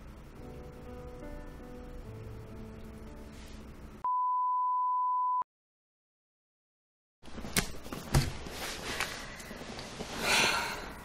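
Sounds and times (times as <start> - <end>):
quiet background music: 0.0 - 4.0
steady test tone beep: 4.0 - 5.5.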